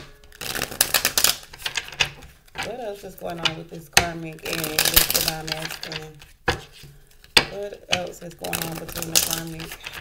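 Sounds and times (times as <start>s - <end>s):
cards being shuffled: 8.4s - 10.0s.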